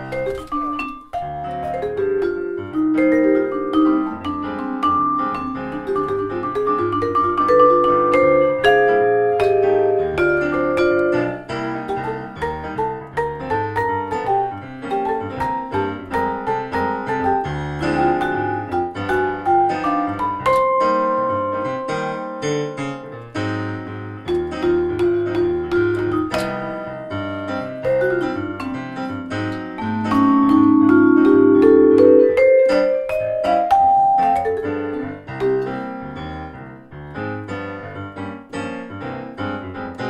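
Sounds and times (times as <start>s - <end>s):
vibraphone struck with mallets: 0.0s - 22.8s, 24.3s - 36.2s
electric keyboard piano tone: 0.0s - 40.0s.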